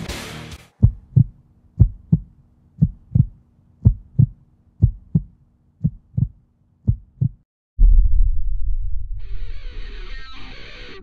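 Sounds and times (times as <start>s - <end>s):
heartbeat thumps: 0.8s - 8.0s.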